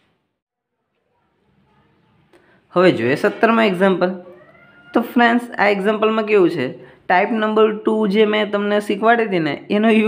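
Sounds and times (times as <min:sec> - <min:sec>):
person talking: 0:02.7 - 0:10.0.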